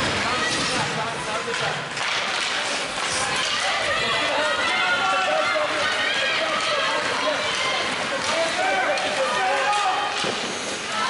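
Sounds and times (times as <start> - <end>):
voices shouting and calling: 3.2 - 10.2.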